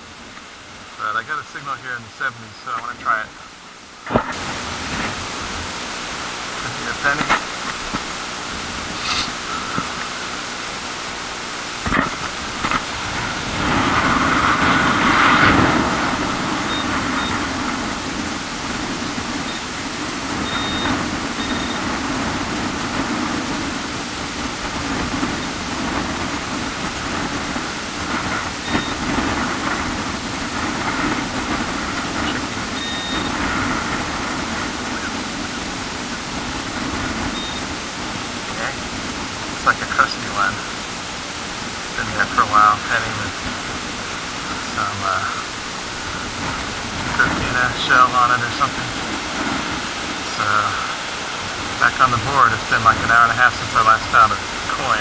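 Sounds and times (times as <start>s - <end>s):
surf: 0.0s - 55.0s
wind: 0.0s - 55.0s
metal detector beeps: 16.7s - 17.4s, 19.4s - 19.7s, 20.4s - 21.8s, 28.6s - 29.0s, 32.8s - 33.3s, 37.3s - 37.7s.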